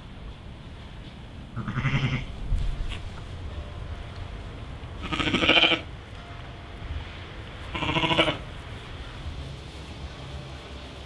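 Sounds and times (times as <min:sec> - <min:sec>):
sheep bleating: 0:01.6 - 0:02.3, 0:05.0 - 0:05.9, 0:07.7 - 0:08.4.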